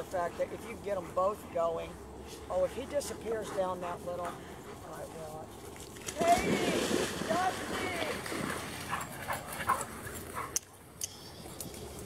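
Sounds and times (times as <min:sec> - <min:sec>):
dogs panting: 0:00.0 - 0:05.9, 0:08.2 - 0:10.8.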